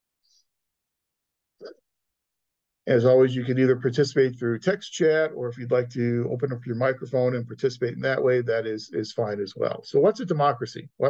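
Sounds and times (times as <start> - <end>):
man speaking: 2.9 - 11.0.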